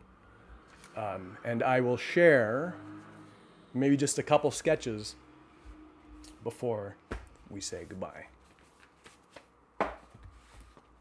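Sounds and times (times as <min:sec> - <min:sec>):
paper rustling and tapping: 0:08.4 - 0:10.9.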